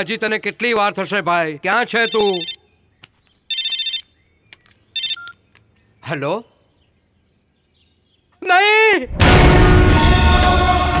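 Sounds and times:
mobile phone ringtone: 2.0 - 2.6, 3.5 - 4.1, 5.0 - 5.4.

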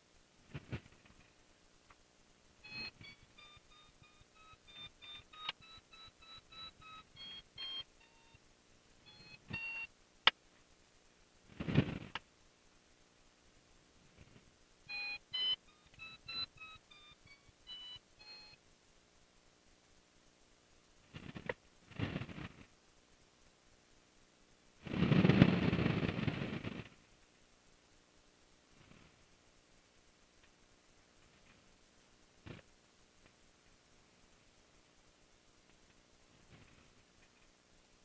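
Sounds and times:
short electronic beeps: 2.6 - 8.4, 9.1 - 9.9, 14.9 - 18.6.

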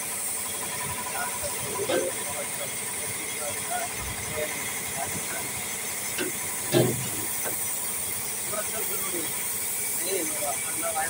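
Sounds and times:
paint spray gun hissing: 0.0 - 1.7, 4.7 - 11.0.

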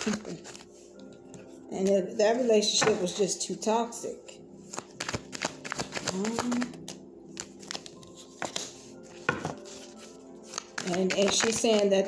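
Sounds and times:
faint background music: 0.0 - 12.0
cards tapping on a table: 8.4 - 9.6.

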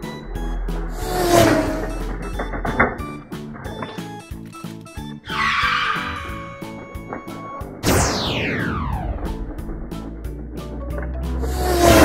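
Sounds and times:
tire screech: 0.0 - 3.0, 5.3 - 6.8, 11.3 - 12.0
background music: 0.0 - 12.0.

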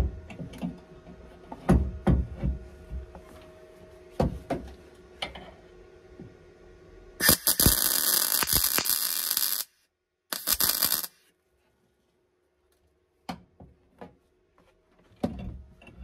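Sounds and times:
welding arc buzzing: 7.2 - 11.2.

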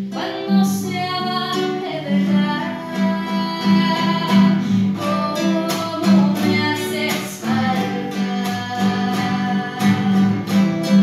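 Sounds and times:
acoustic guitar: 0.0 - 11.0
girl singing: 0.0 - 11.0.

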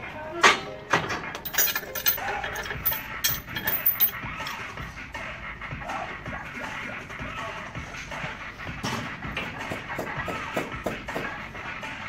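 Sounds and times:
weight plates clinking: 1.4 - 4.6.

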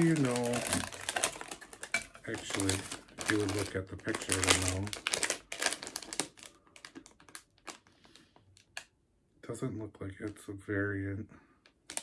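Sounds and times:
plastic packaging clicking: 0.0 - 8.9, 11.8 - 12.0.

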